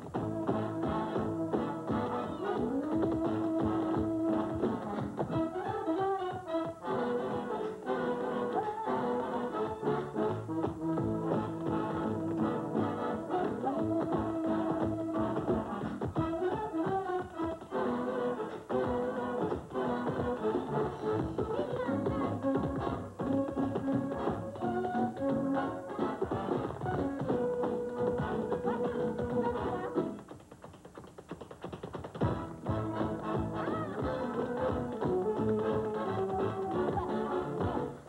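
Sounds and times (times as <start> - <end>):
tap dancing clicks: 26.1 - 37.8.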